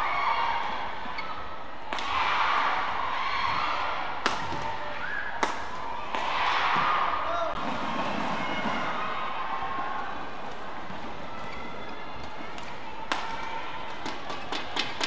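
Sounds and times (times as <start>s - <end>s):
racket hitting shuttlecock: 1.9s - 2.2s, 4.2s - 4.7s.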